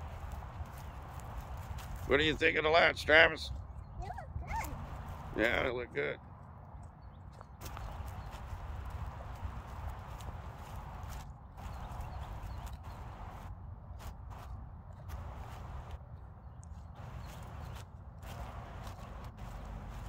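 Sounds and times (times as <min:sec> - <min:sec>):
footsteps on grass: 0:00.0 - 0:02.6, 0:07.3 - 0:20.0.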